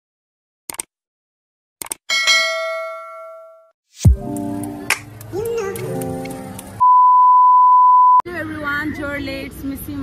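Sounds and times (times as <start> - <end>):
test-tone beep: 6.8 - 8.2.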